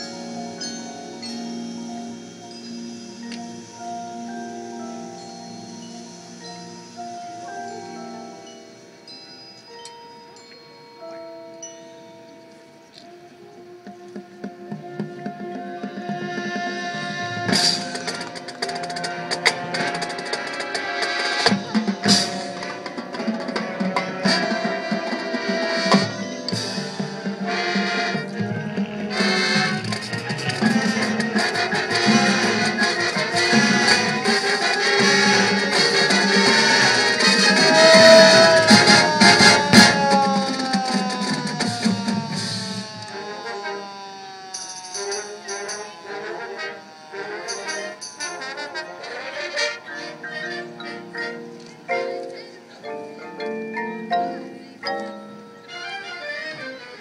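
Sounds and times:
marching band brass and drums: 13.0s - 43.8s, 44.7s - 51.5s.

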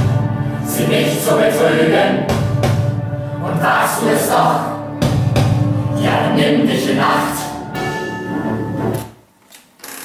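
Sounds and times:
mixed choir holding a chord: 0.0s - 9.0s.

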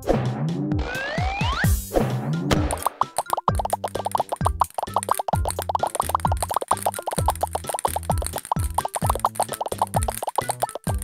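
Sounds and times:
children's music with bass: 0.0s - 11.0s
cartoon plop sound effects: 2.5s - 11.0s.

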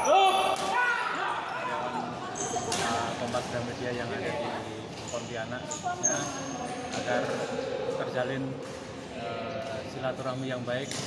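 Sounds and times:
shoes squeaking on court floor: 1.4s - 7.5s.

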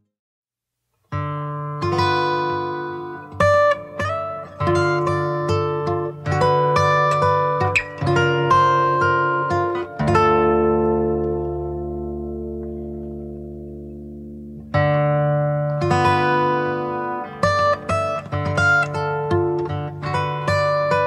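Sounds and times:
acoustic guitar picking: 1.1s - 21.0s.

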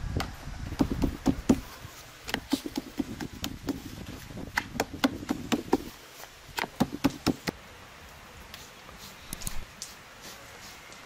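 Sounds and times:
dough slapping on wooden board: 2.3s - 3.9s, 4.5s - 5.9s, 6.6s - 7.6s.

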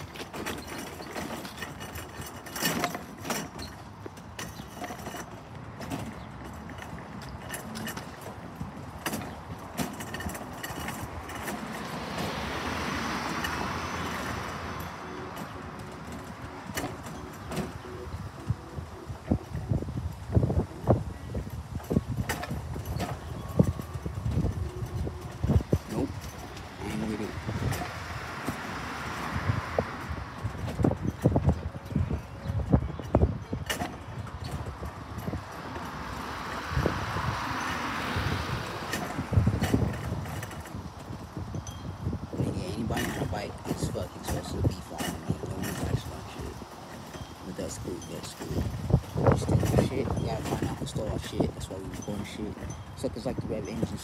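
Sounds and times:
cars passing: 0.0s - 54.0s.

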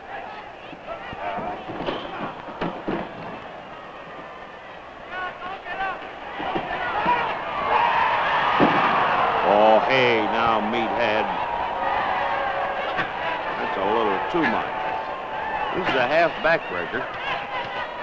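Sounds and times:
arena crowd noise: 0.0s - 18.0s
crowd shouts: 0.0s - 18.0s.

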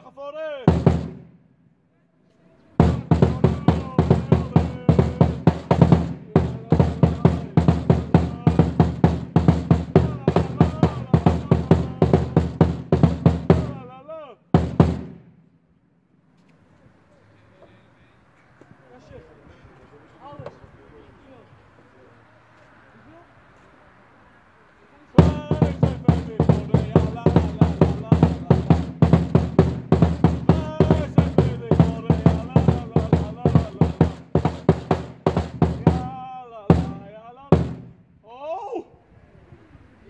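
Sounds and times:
faint distant voices: 0.0s - 40.0s
loud music with heavy drum beat: 0.7s - 1.2s, 2.8s - 13.8s, 14.6s - 15.3s, 25.2s - 38.0s.

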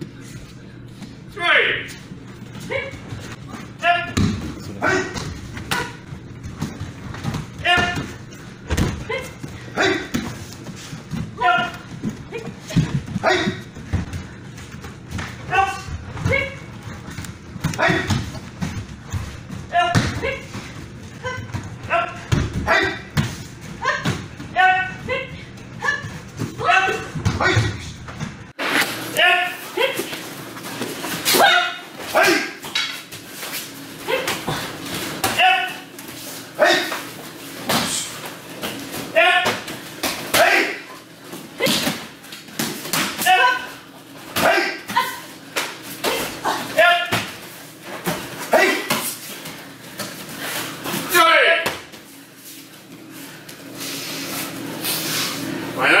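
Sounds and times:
people shouting: 3.8s - 6.1s, 7.6s - 8.3s, 8.9s - 10.3s, 11.3s - 13.7s, 15.4s - 16.7s, 17.6s - 18.3s, 19.7s - 20.5s, 21.1s - 23.2s, 23.8s - 27.9s, 31.2s - 32.6s, 35.2s - 35.9s, 36.6s - 37.1s, 39.1s - 42.0s, 43.1s - 45.4s, 46.0s - 47.3s, 48.4s - 49.0s.

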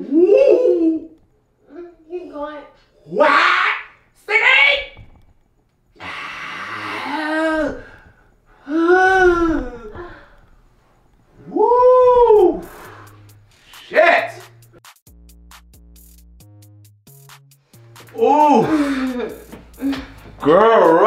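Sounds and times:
person moaning and wailing: 6.0s - 10.4s, 11.5s - 12.7s, 18.2s - 20.1s.

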